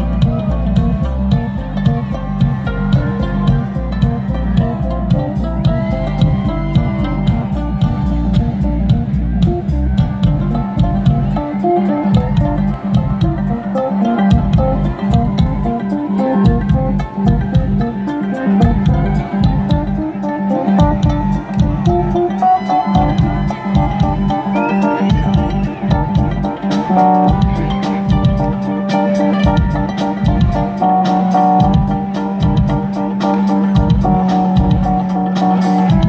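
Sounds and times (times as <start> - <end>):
live band through loudspeakers: 0.0 - 36.0.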